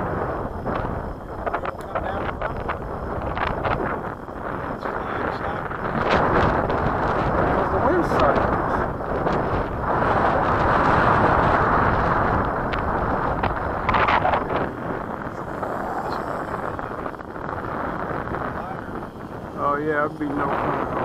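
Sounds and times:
strong wind buffeting microphone: 0:00.0 - 0:21.0.

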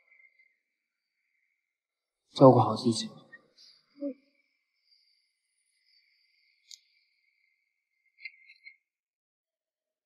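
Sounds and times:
crickets chirping: 0:03.4 - 0:08.8.

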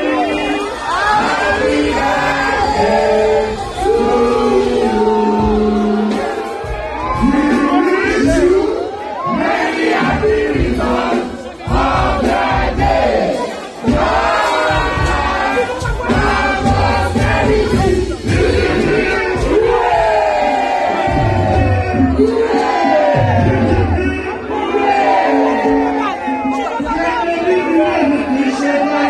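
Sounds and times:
excited crowd shouting: 0:00.0 - 0:29.0
group singing loudly: 0:00.0 - 0:29.0.

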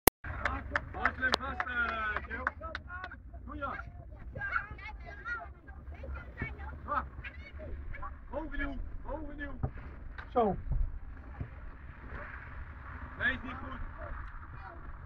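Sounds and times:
children calling and chattering: 0:00.3 - 0:09.3.

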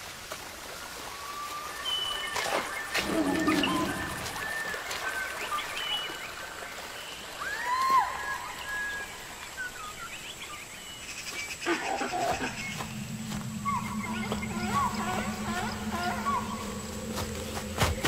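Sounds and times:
swooping animal call: 0:11.6 - 0:17.8
low steady hum: 0:11.8 - 0:18.0.

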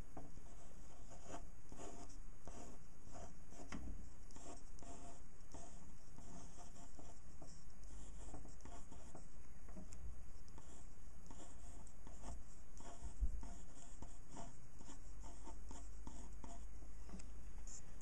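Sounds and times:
pen scratching across paper: 0:00.2 - 0:17.9.

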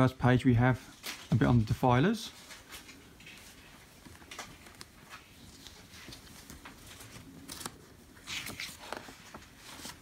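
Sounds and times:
magazine pages rustling: 0:00.9 - 0:10.0.

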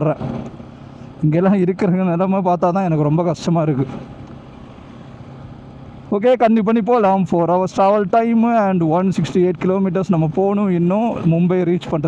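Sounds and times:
man talking: 0:00.0 - 0:00.3, 0:01.2 - 0:04.0, 0:06.1 - 0:12.0
faint wind: 0:00.0 - 0:12.0
motorcycle road noise: 0:00.0 - 0:12.0.

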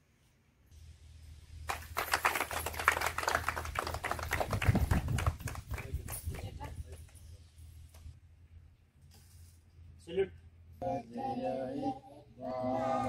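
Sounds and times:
people clapping: 0:01.7 - 0:07.2.

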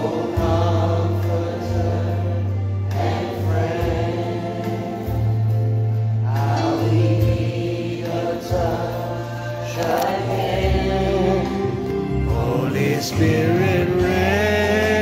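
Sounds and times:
choir singing gospel song: 0:00.0 - 0:15.0.

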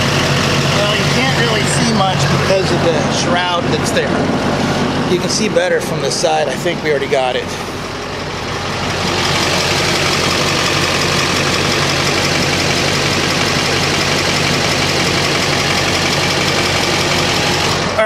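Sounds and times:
diesel engine idling: 0:00.0 - 0:18.0.

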